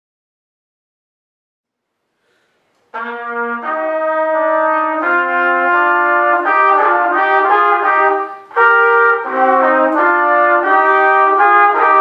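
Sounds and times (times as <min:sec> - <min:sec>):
faint room noise: 0:01.7 - 0:12.0
trumpets playing sustained notes: 0:02.9 - 0:12.0.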